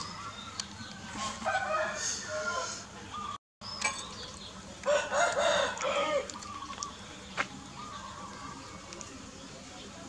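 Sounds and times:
rooster crowing: 1.1 - 2.8, 4.8 - 6.3.

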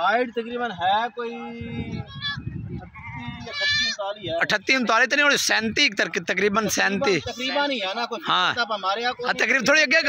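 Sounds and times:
goat bleating: 2.2 - 4.0.

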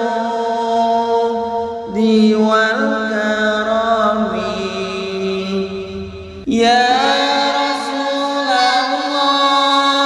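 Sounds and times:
person chanting a devotional song: 0.0 - 10.0.

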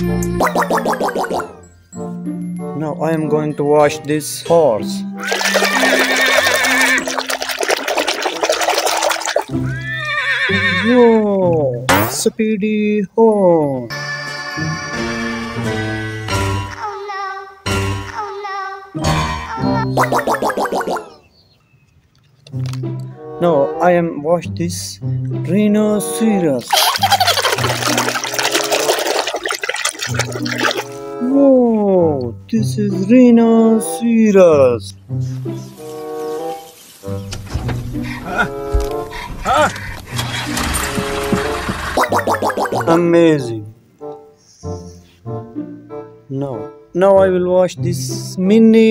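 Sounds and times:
background music: 0.0 - 12.4, 13.2 - 21.3, 22.3 - 48.9
water splashing in a tub: 0.4 - 1.4, 5.2 - 9.7, 20.0 - 21.0, 26.7 - 31.0, 42.0 - 42.9
horse whinnying: 5.2 - 7.4, 9.4 - 11.2.

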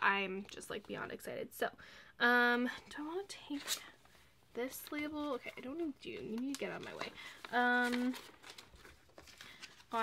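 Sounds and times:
paper sheets crinkling and rustling: 4.6 - 10.0.

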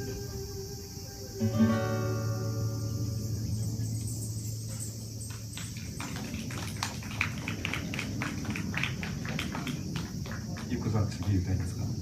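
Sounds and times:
acoustic guitar chord: 0.0 - 5.1
audience clapping: 5.0 - 12.0.

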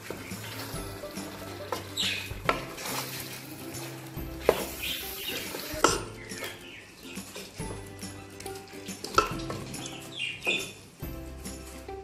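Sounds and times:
wooden spoon stirring in pot: 0.0 - 12.0
spoon knocking against pot: 5.8 - 6.2.

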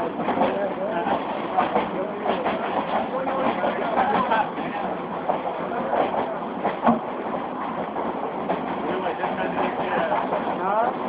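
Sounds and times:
train rolling noise: 0.0 - 11.0
voices: 0.0 - 11.0.

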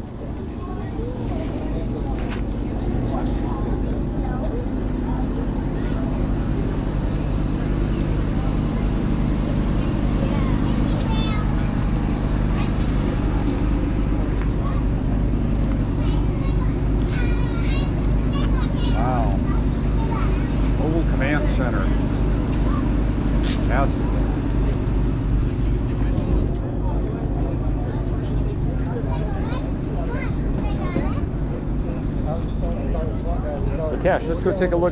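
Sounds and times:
engine idling: 0.0 - 34.9
faint voices: 0.0 - 34.9.

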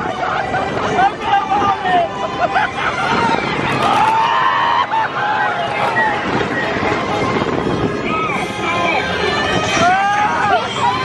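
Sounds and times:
roller coaster train rumbling: 0.0 - 11.0
wind rushing over microphone: 0.0 - 11.0.

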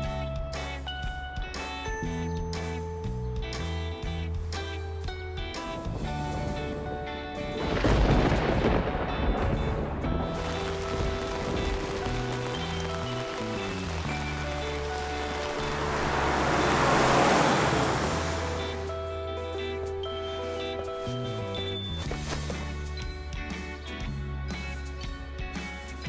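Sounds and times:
rain downpour rush: 7.5 - 19.0.

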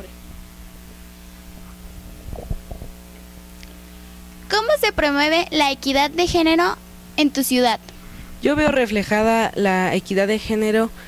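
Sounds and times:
electrical hum: 0.0 - 11.0
microphone handling thumps: 0.2 - 3.4, 8.1 - 9.4.

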